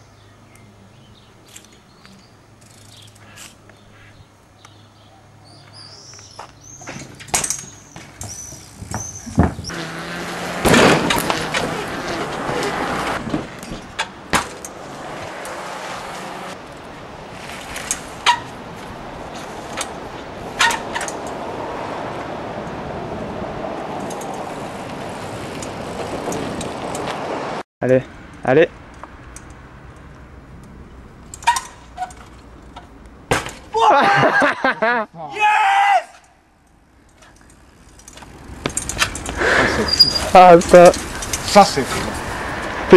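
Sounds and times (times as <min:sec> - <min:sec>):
birds chirping: 0:00.0 - 0:10.0, 0:37.4 - 0:42.5
bike landing crack: 0:06.2 - 0:22.7, 0:31.2 - 0:33.9, 0:37.2 - 0:42.2
bike landing on metal railing: 0:06.8 - 0:09.7, 0:10.6 - 0:14.8, 0:17.8 - 0:18.5, 0:31.3 - 0:33.8
bike landing on plastic bin: 0:06.8 - 0:09.7, 0:10.6 - 0:14.6
person shouting: 0:33.7 - 0:34.4, 0:35.2 - 0:36.2
laughter: 0:33.8 - 0:35.2.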